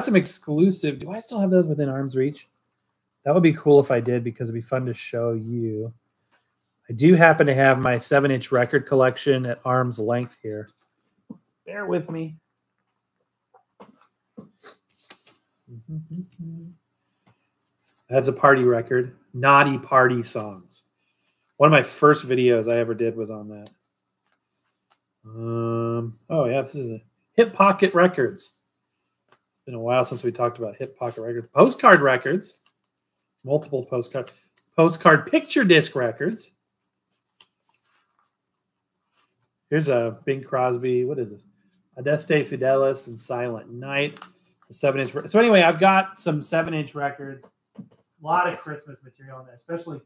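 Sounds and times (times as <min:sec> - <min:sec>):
vinyl record sleeves rustling: 0:06.2 - 0:12.2, 0:13.8 - 0:15.7, 0:17.1 - 0:18.9, 0:29.0 - 0:40.2, 0:42.1 - 0:46.8
man's short wordless vocal sound: 0:25.3 - 0:26.1.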